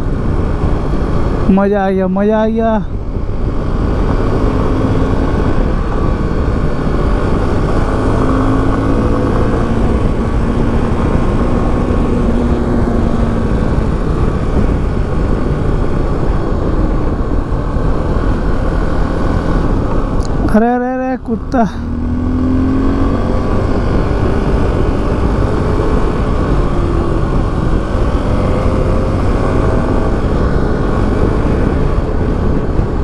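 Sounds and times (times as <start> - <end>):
motorcycle engine hum: 0.0 - 33.0
wind buffeting microphone: 2.9 - 20.5, 21.8 - 33.0.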